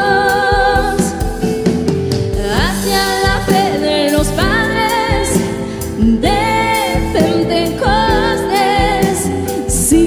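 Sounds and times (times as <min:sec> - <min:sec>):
women singing worship song: 0:00.0 - 0:01.6, 0:02.3 - 0:10.0
instrumental accompaniment: 0:00.0 - 0:10.0.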